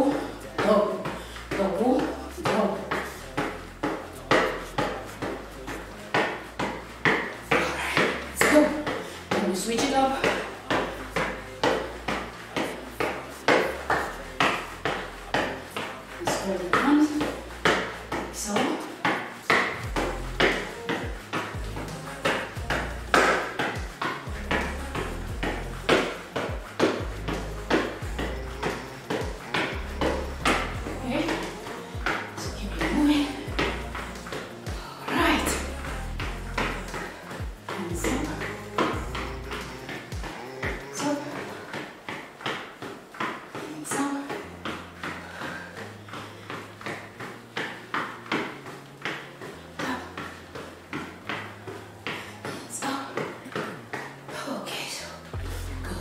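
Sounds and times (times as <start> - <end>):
background music: 0.0 - 56.0
rebound boots clacking on tile: 16.2 - 54.2.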